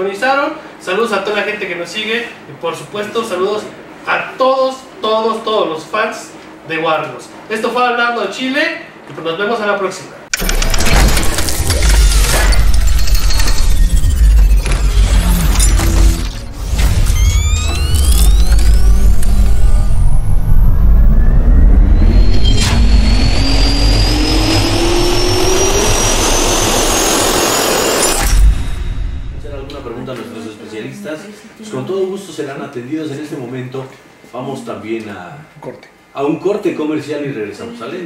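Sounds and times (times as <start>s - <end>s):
rising whine: 10.3s - 30.3s
jet turbine spool-up effect: 10.4s - 30.1s.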